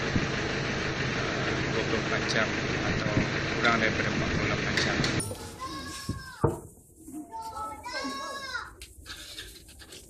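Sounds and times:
running machinery: 0.0 - 5.2.

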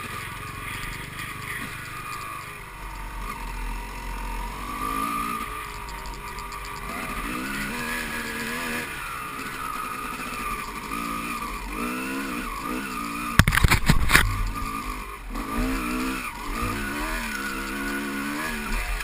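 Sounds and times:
dirt bike engine revving: 0.0 - 19.0
hard knocks and rattles: 13.4 - 14.8.

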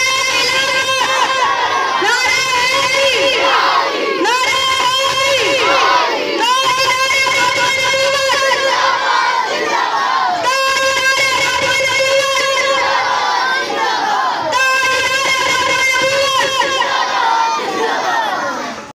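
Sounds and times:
boy declaiming through loudspeaker: 0.0 - 13.7, 14.4 - 18.8.

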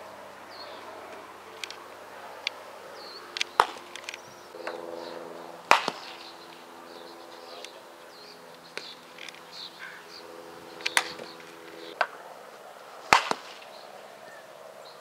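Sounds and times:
faint steady hum: 0.0 - 15.0
softball striking hard: 3.6 - 3.8, 5.7 - 6.4, 13.1 - 13.8.

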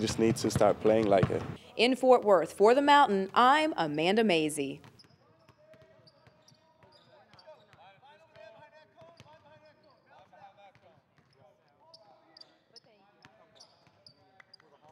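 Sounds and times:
basketballs bouncing on hardwood: 0.0 - 1.6
players talking: 0.0 - 4.8.

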